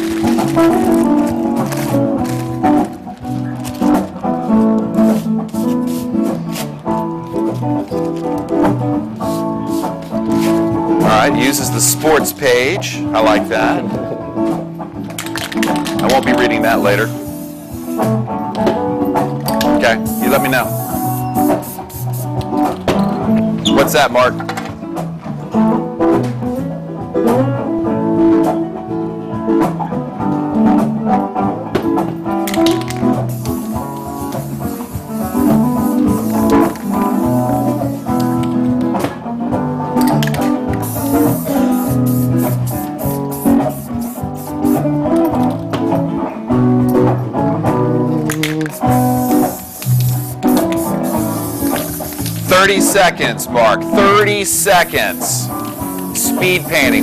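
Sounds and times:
live band with guitar: 0.0 - 57.0.

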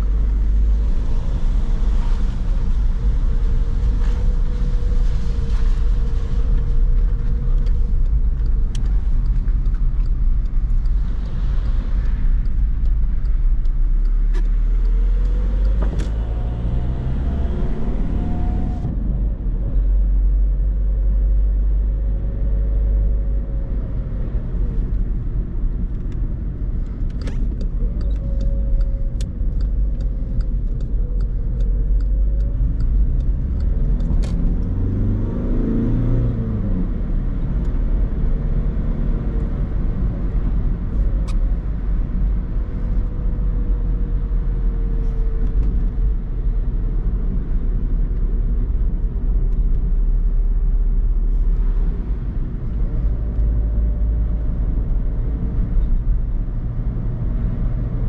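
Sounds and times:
tyre noise on wet road: 0.0 - 21.7
car engine and road rumble: 0.0 - 58.0.

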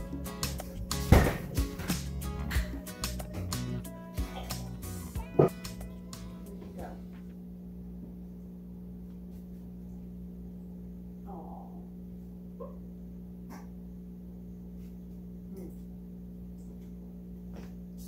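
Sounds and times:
steady electrical hum: 0.0 - 18.0.

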